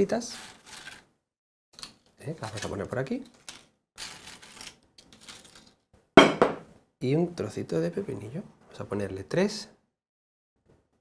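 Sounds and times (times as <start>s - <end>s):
potato chips rustling on slate: 0.2s - 1.0s, 1.8s - 5.8s.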